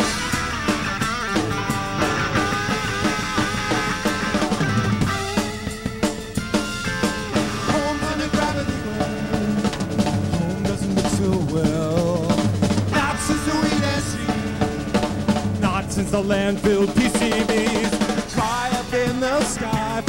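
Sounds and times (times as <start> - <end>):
drums hitting steady beat: 0.0 - 20.0
rock band playing live: 0.0 - 20.0.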